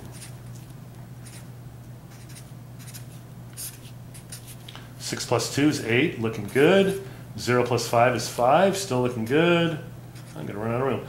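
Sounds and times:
marker pen scratching on paper: 0:00.0 - 0:00.3, 0:01.2 - 0:01.5, 0:02.1 - 0:04.6, 0:06.4 - 0:06.8, 0:10.2 - 0:10.5
steady low hum: 0:00.0 - 0:11.0.

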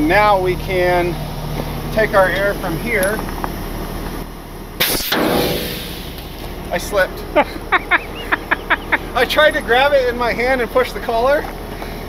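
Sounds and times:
truck engine idling: 0:00.0 - 0:12.0
compressed air blast and hiss: 0:04.8 - 0:06.4.

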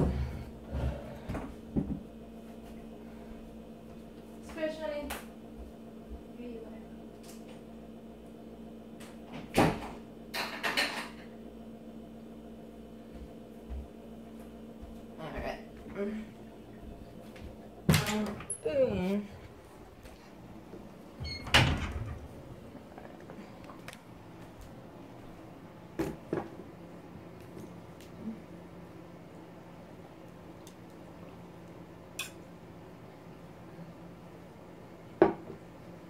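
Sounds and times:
refrigerator humming: 0:00.0 - 0:36.0.

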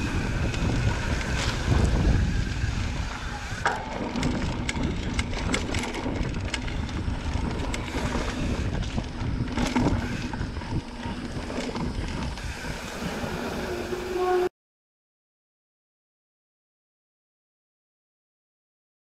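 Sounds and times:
tyres rolling over dirt: 0:00.0 - 0:14.4
wind buffeting microphone: 0:00.0 - 0:14.5
bike frame clattering and clicking: 0:03.0 - 0:12.2.

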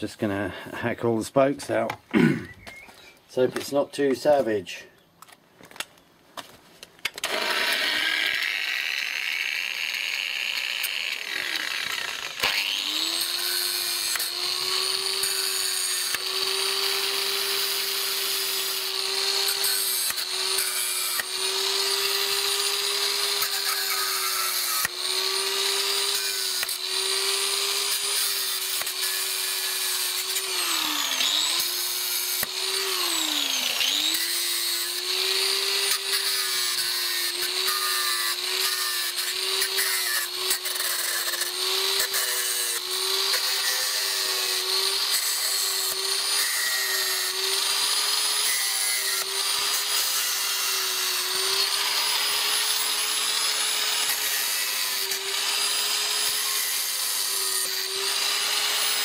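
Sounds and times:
electric grinder cutting wire spokes: 0:07.0 - 0:59.0.

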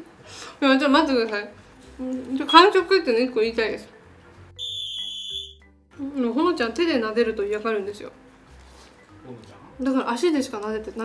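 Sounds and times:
high-pitched electronic tone: 0:04.6 - 0:05.6.

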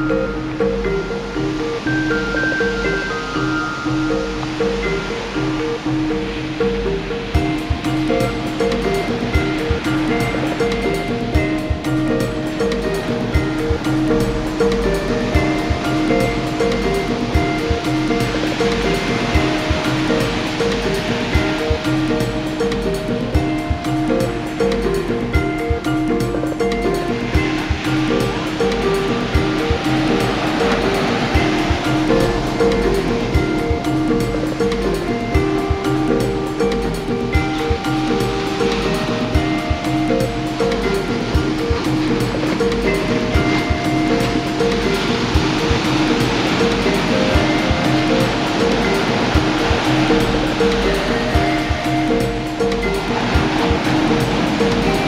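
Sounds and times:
ocean surf breaking on beach: 0:00.0 - 0:55.0
soft new age instrumental music: 0:00.0 - 0:55.0.

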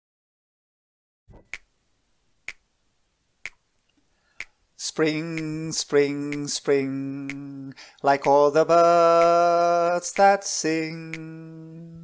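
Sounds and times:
finger snaps: 0:06.3 - 0:06.6, 0:07.2 - 0:07.6, 0:11.0 - 0:11.5.

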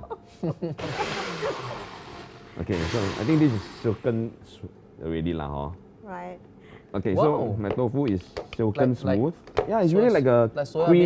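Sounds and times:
people laughing: 0:00.0 - 0:02.0
blender motor whirring: 0:00.8 - 0:04.2
people talking: 0:02.6 - 0:04.3.

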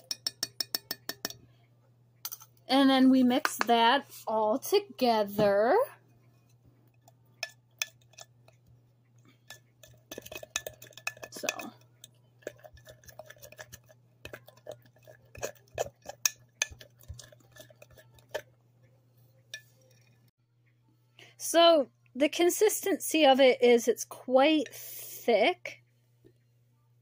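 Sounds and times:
spoon clinking against mug: 0:00.0 - 0:01.4, 0:07.4 - 0:08.6, 0:09.4 - 0:18.4
spoon stirring thick batter: 0:00.0 - 0:01.5, 0:06.2 - 0:18.7.

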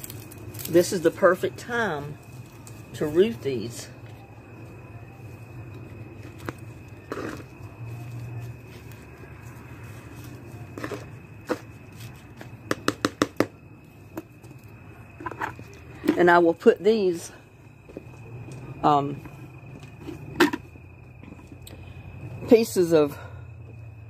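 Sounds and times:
hands rustling soil in a pot: 0:04.0 - 0:12.6.

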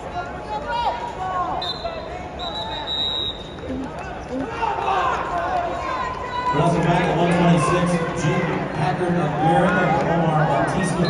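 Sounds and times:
spectators shouting and talking: 0:00.0 - 0:11.0.

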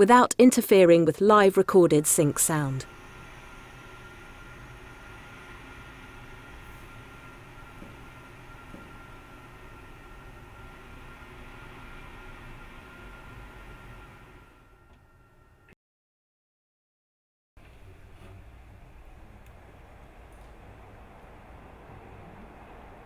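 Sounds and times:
thin high hum: 0:00.7 - 0:15.8.

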